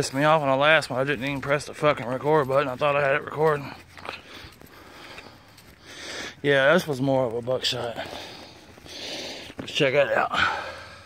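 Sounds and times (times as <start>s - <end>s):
footsteps through grass: 0.0s - 10.5s
person breathing: 3.6s - 6.4s, 8.0s - 9.6s, 10.3s - 11.0s.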